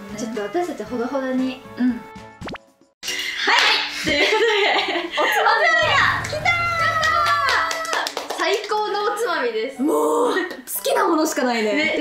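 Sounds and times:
young women speaking excitedly: 5.2 - 12.0.

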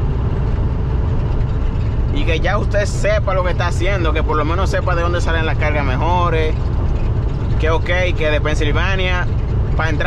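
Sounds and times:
diesel engine drone: 0.0 - 10.0
road noise: 0.0 - 10.0.

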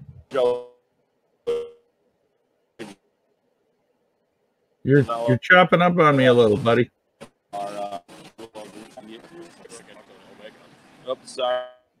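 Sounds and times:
clipped man's voice: 0.2 - 0.6, 4.9 - 6.9, 7.6 - 11.7.

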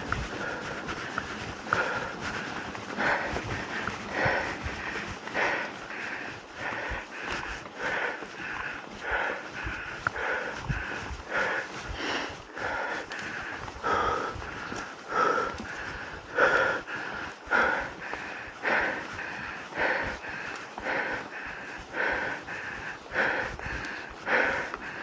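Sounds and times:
person breathing hard: 0.0 - 25.0.

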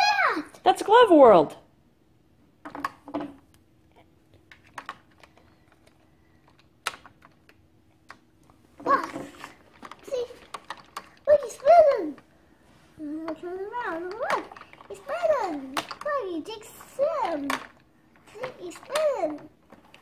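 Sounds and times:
plastic toy parts clicking: 4.5 - 8.2, 9.0 - 12.2, 13.9 - 20.0.

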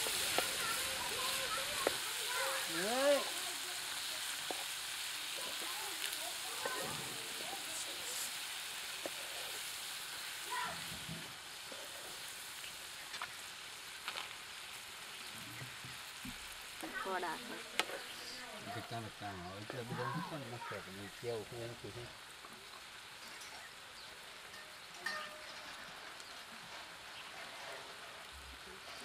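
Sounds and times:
vegetables sizzling in a pan: 0.0 - 29.0.

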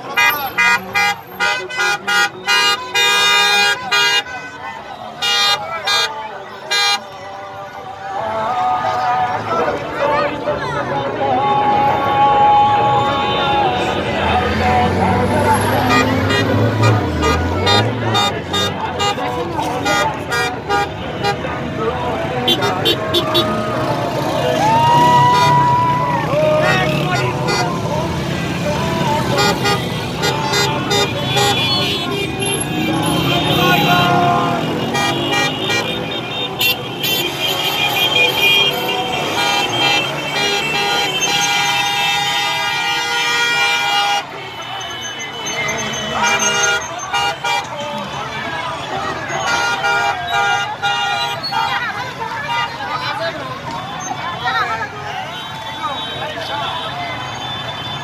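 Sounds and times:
car horns honking: 0.0 - 7.2, 12.0 - 24.2, 24.9 - 52.8, 53.6 - 58.0
passing car and motorcycle traffic: 0.0 - 58.0
people shouting: 22.5 - 27.8, 28.7 - 53.3.

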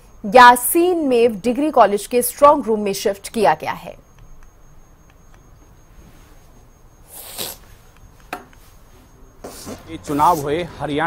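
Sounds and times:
faint intake of breath: 7.0 - 7.8.

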